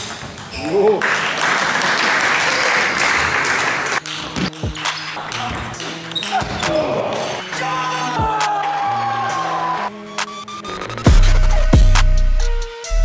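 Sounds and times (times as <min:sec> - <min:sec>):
applause: 0:00.9 - 0:04.0
music: 0:03.5 - 0:13.0.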